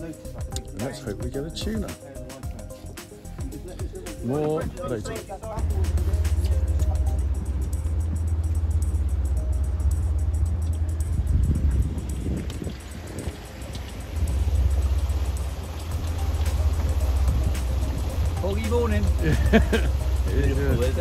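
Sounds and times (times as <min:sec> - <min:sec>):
motor boat engine rumbling: 0:00.0 - 0:21.0
music playing: 0:00.0 - 0:21.0.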